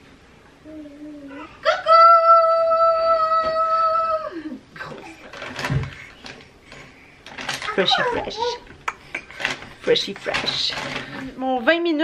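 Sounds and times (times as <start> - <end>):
short rustle or thump: 5.2 - 7.8.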